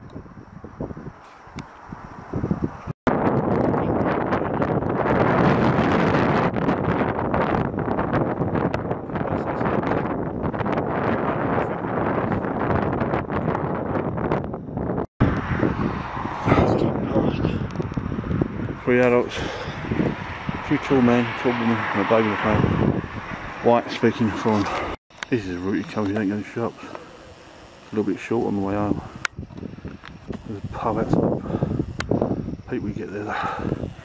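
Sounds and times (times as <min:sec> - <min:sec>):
wind buffeting microphone: 0:00.0 - 0:34.0
road traffic noise: 0:15.2 - 0:34.0.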